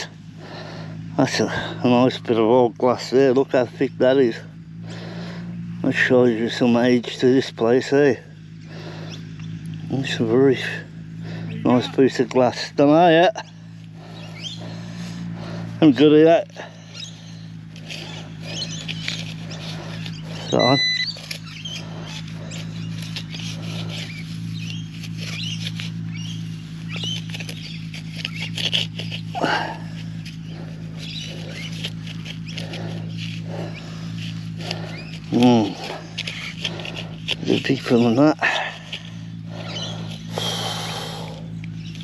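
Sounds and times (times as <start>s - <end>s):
steady low hum: 0.0s - 42.0s
knife scraping through mud: 13.9s - 40.3s
soil crumbled by hand: 17.4s - 41.2s
electronic beep: 20.5s - 21.2s.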